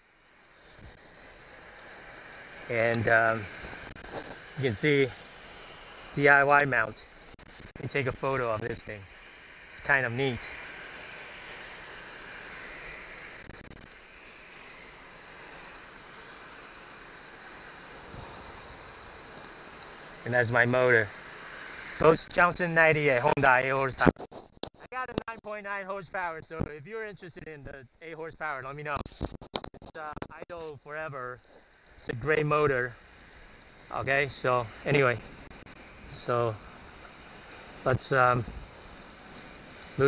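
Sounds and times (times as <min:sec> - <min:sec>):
wind noise on microphone: 0:18.0 - 0:18.9, 0:38.4 - 0:38.8.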